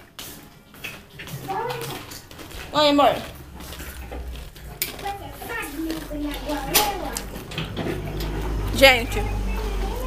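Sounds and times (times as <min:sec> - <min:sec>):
quiet voices talking: 0:02.7 - 0:10.0.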